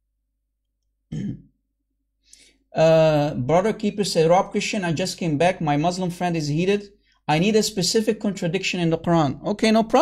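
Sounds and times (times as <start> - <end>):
man clearing throat: 1.1 - 1.6.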